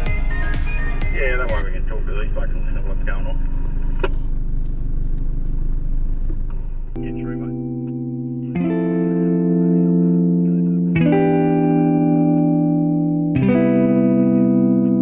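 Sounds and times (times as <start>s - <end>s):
indistinct voices: 1.2s - 4.1s
vehicle engine and cabin rumble: 1.3s - 7.6s
music with sustained guitar chords: 6.9s - 15.0s.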